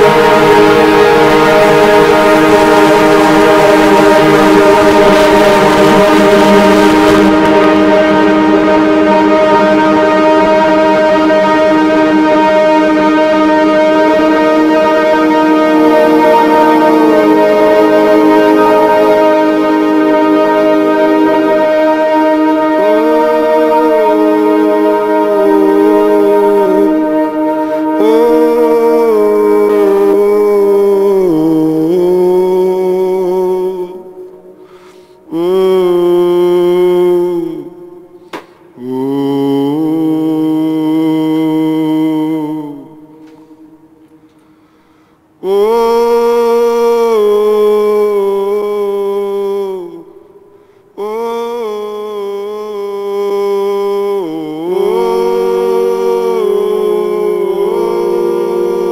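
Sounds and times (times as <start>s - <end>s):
bending synth tone: 0.0s - 34.6s, 45.4s - 58.9s
synthesizer drone chord: 0.0s - 58.9s.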